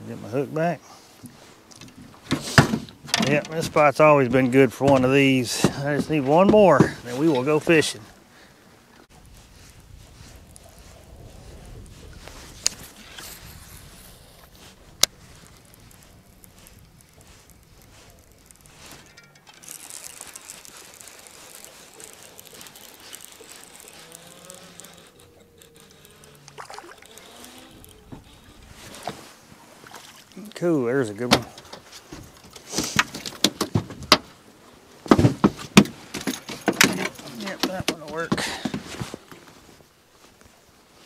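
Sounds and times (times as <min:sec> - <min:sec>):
fishing reel whine: 0:12.6 - 0:29.1.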